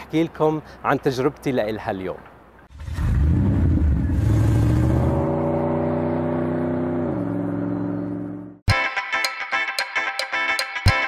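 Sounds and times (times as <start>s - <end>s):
car engine revving: 2.7s - 8.6s
music with plucked notes: 8.7s - 11.0s.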